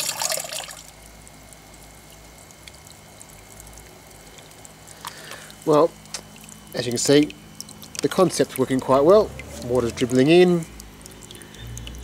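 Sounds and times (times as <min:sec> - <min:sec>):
water pouring into bucket: 0:00.0 - 0:12.0
water trickling and dripping: 0:00.0 - 0:12.0.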